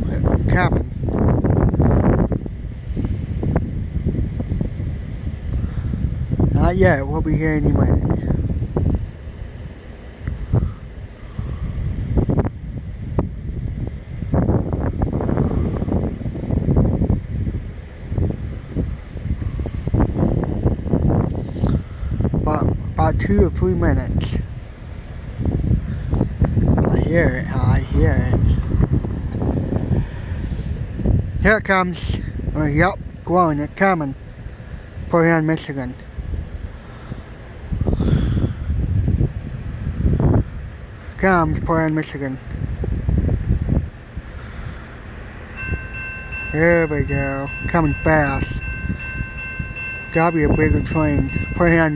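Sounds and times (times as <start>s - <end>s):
wind buffeting microphone: 0.0s - 35.2s, 36.0s - 41.7s, 42.4s - 51.9s.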